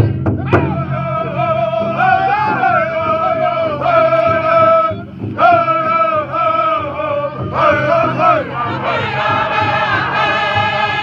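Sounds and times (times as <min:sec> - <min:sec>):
group chanting in unison: 0:00.5 - 0:11.0.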